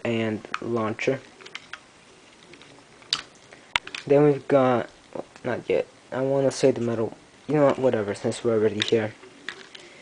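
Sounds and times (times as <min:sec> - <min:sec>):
faint plastic clicks: 0:08.7 - 0:10.0.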